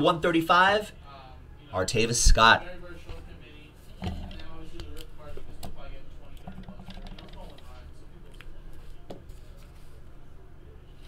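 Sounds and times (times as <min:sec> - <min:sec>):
handling items on tabletop: 0:03.9 - 0:10.2.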